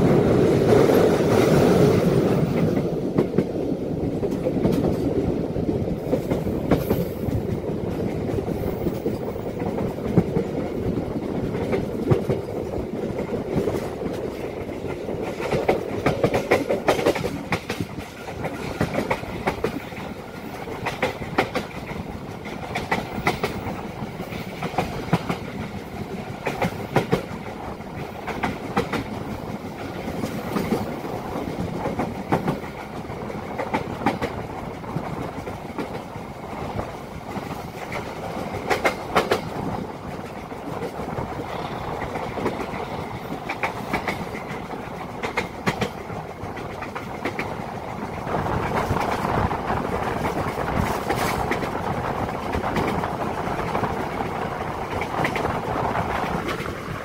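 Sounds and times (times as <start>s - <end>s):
train rolling rumble: 0.0s - 57.0s
wheels clacking over rail joints: 0.0s - 57.0s.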